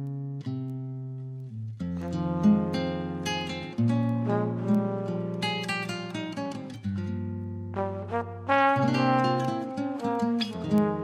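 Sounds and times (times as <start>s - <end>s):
guitar plucked notes: 0.0s - 11.0s.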